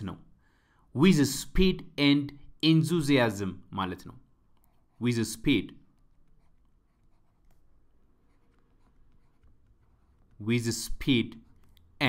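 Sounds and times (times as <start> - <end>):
pen scratching while writing: 5.9 - 10.4.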